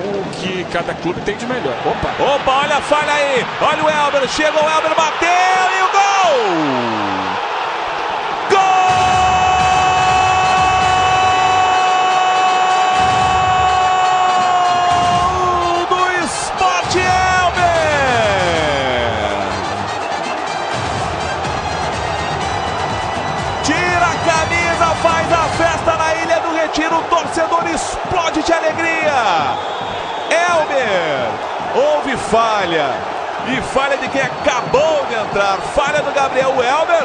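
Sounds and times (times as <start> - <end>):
stadium crowd cheering: 0.0 - 37.0
commentator's drawn-out goal shout: 2.2 - 7.4, 8.5 - 19.6.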